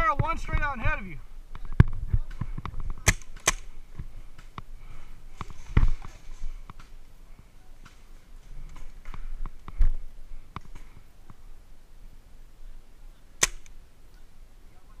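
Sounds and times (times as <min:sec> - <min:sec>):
paintball pops and clicks: 0:13.4 - 0:13.8.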